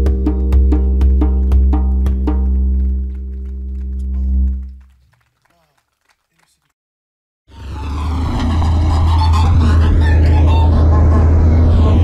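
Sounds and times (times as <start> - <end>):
deep car engine rumble: 0.0 - 4.9, 7.5 - 12.0
road noise: 7.5 - 12.0.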